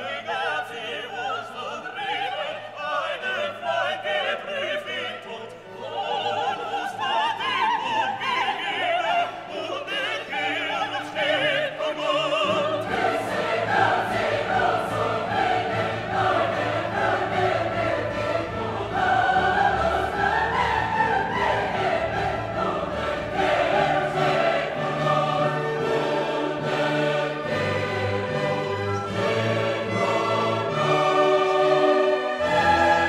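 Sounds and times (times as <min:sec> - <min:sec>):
operatic choir with orchestra: 0:00.0 - 0:33.0.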